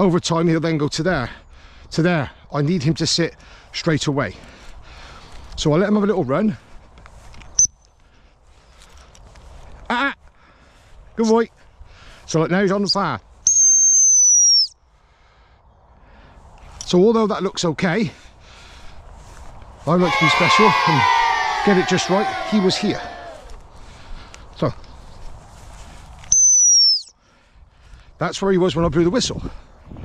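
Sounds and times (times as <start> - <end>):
faint outdoor background: 0.0 - 30.0
dog whistle blast: 13.5 - 14.8, 26.3 - 27.1.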